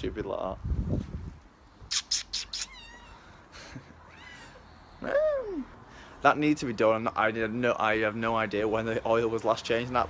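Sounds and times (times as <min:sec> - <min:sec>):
cat hissing: 0:01.8 - 0:05.0
cat meowing: 0:02.4 - 0:03.4, 0:04.0 - 0:04.6.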